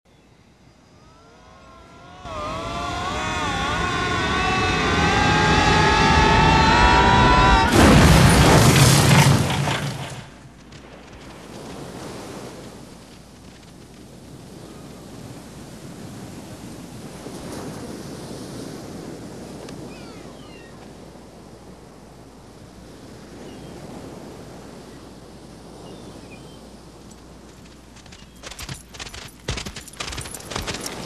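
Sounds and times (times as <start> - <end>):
wavering gliding whine: 1.0 - 7.7
loud crash rumbling: 3.4 - 11.5.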